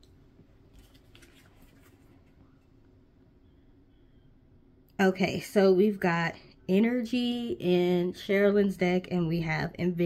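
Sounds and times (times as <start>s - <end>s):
low room hum: 0.0s - 10.0s
cards rustling and clicking: 0.7s - 2.4s.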